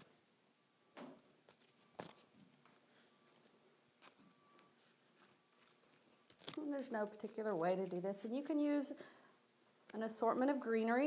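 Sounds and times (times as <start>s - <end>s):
foliage stems rustling: 4.8s - 8.5s.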